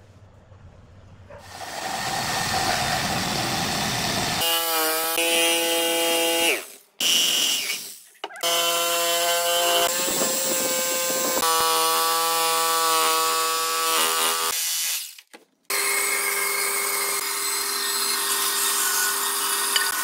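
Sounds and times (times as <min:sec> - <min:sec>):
jigsaw rasping through wood: 0:01.4 - 0:14.8, 0:15.7 - 0:20.0
jigsaw motor whine: 0:01.5 - 0:07.8, 0:08.4 - 0:14.6, 0:15.7 - 0:20.0.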